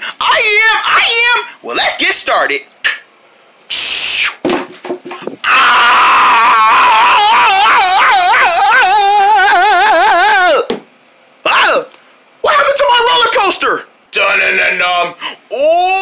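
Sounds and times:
short hiss: 0:03.7 - 0:04.4
person wailing long wavering whoa: 0:05.4 - 0:10.7, 0:15.5 - 0:16.0.

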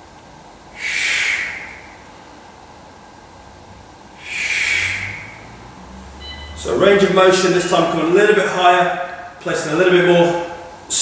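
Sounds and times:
man breathing out forcefully: 0:00.8 - 0:02.0, 0:04.2 - 0:05.5.

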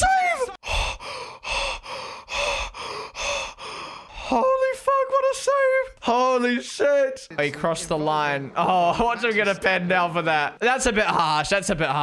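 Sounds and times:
man breathing hard and gasping: 0:00.6 - 0:04.4.

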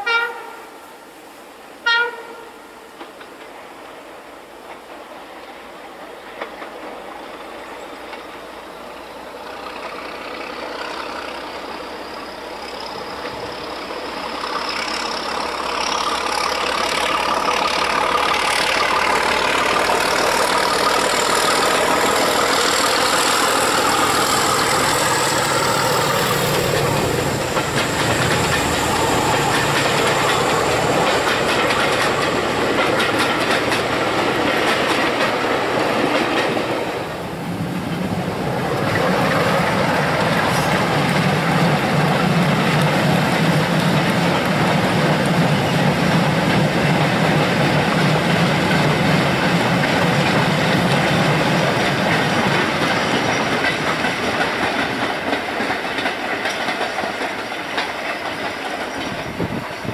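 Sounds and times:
diesel locomotive passing: 0:00.0 - 0:59.9
train wheels clattering on rails: 0:03.0 - 0:59.9.

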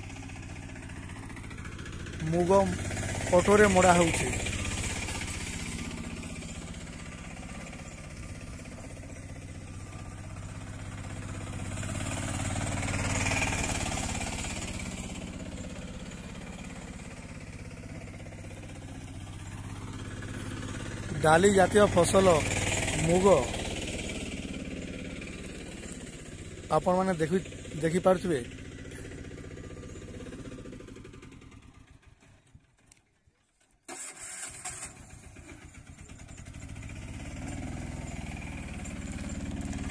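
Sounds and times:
auto-rickshaw engine running: 0:00.0 - 0:39.9.

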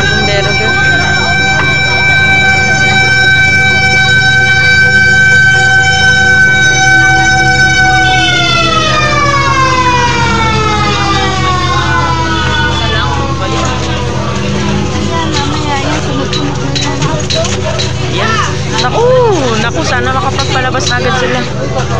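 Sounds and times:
fire truck siren winding down: 0:00.0 - 0:21.9
truck engine rumble: 0:00.0 - 0:21.9.

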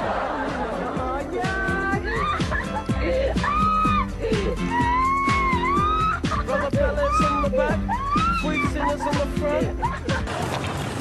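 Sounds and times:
background music with beat: 0:00.0 - 0:10.5.

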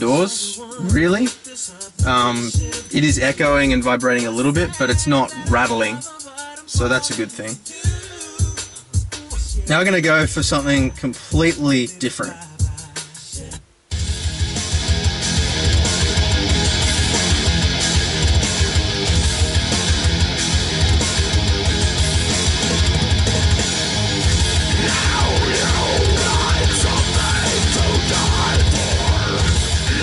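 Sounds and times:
singing over the mix: 0:00.0 - 0:13.7, 0:24.3 - 0:30.0
heavy metal song on car stereo: 0:00.0 - 0:30.0.

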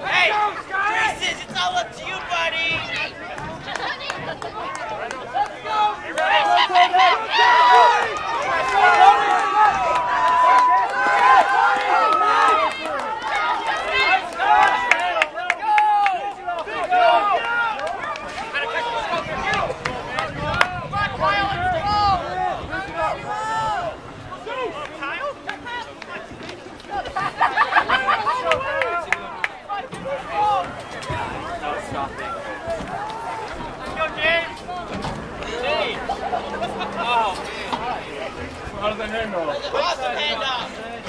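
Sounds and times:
crowd chatter: 0:00.0 - 0:41.0
spectators shouting and cheering: 0:00.0 - 0:41.0.

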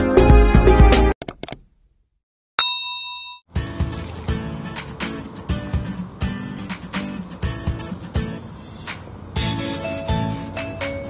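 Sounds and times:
bell ding: 0:02.6 - 0:03.5.

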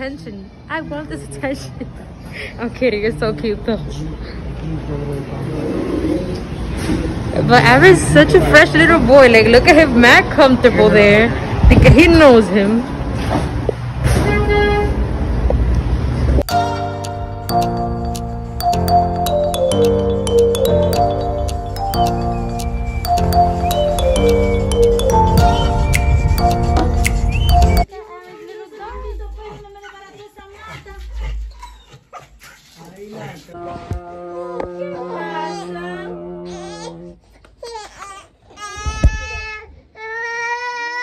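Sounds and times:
traffic rumble: 0:00.0 - 0:27.9.

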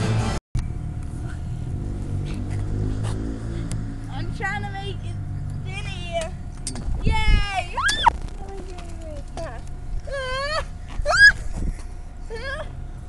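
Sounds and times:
low steady rumble: 0:00.0 - 0:13.0
person squealing: 0:10.1 - 0:11.4.

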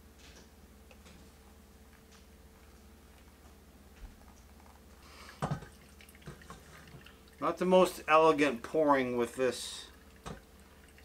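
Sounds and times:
water trickling into filter: 0:04.5 - 0:11.0.

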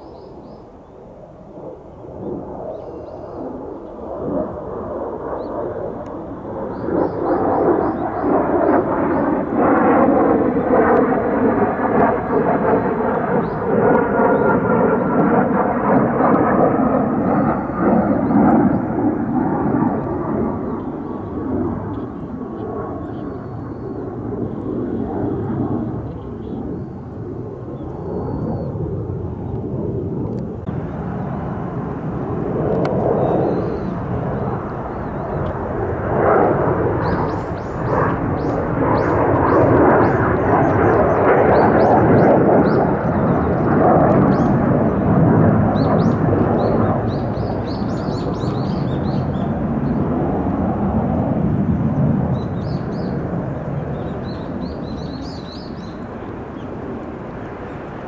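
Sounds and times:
jet flying past: 0:00.0 - 0:58.0.

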